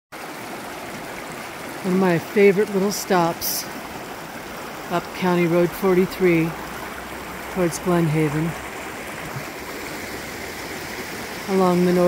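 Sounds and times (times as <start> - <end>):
river rushing over boulders: 0.2 - 12.0.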